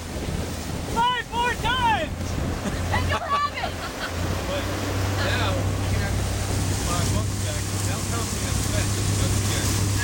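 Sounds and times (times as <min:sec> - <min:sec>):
outboard motor humming: 0:00.0 - 0:10.0
wind buffeting microphone: 0:00.0 - 0:10.0
voices: 0:00.8 - 0:10.0.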